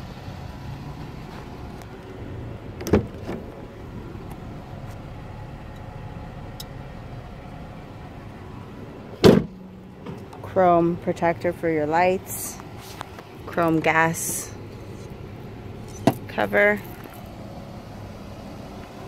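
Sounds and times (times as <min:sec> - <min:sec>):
steady low rumble: 0:00.0 - 0:19.0
gate slamming shut: 0:09.2 - 0:09.6.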